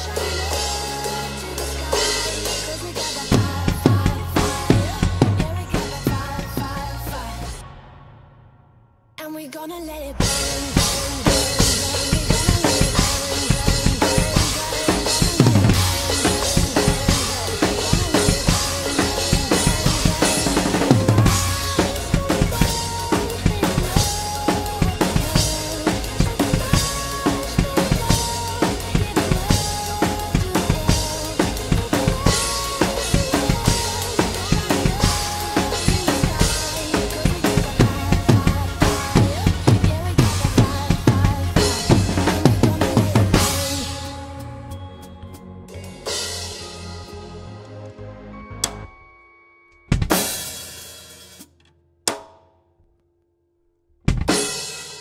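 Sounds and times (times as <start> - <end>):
drum kit playing fast groove: 0.0 - 7.7, 10.2 - 44.8, 45.7 - 47.2, 49.9 - 51.5, 54.1 - 55.0
electronic backing track: 0.0 - 8.0, 10.2 - 49.0.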